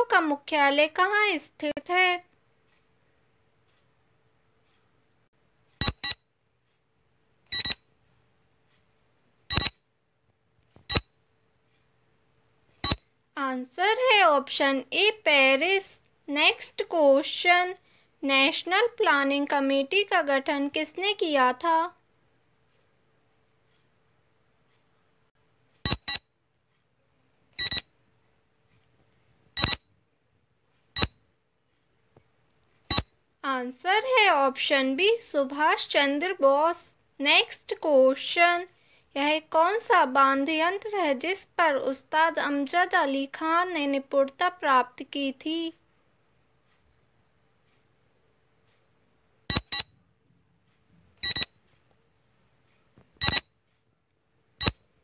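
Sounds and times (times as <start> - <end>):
short electronic beeps: 5.8 - 6.2, 7.5 - 7.8, 9.5 - 9.8, 10.9 - 11.1, 12.8 - 13.0, 25.9 - 26.2, 27.6 - 27.9, 29.6 - 29.8, 31.0 - 31.2, 32.9 - 33.1, 49.5 - 49.9, 51.2 - 51.5, 53.2 - 53.5, 54.6 - 54.8.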